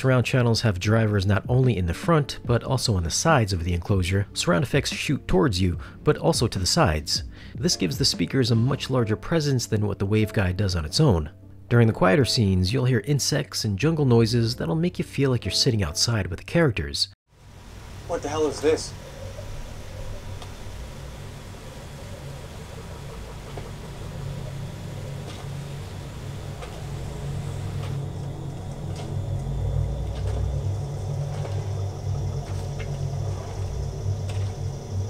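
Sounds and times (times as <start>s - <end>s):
insect and jungle ambience: 17.3s - 35.0s
steady low rumble: 17.4s - 35.0s.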